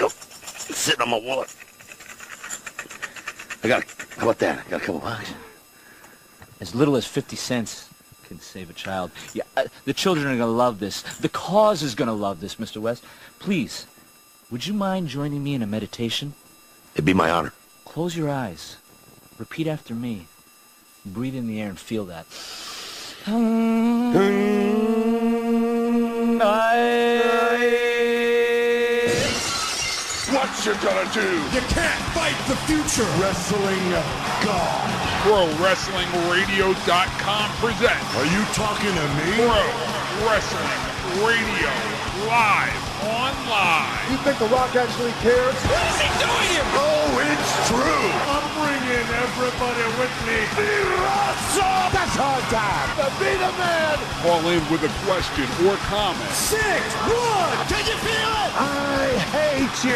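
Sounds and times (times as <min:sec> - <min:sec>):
man's voice: 0:17.0 - 0:17.5, 0:23.3 - 0:29.4, 0:30.3 - 0:59.9
chanted meditation tone: 0:23.3 - 0:28.9
glass shattering: 0:29.1 - 0:30.6.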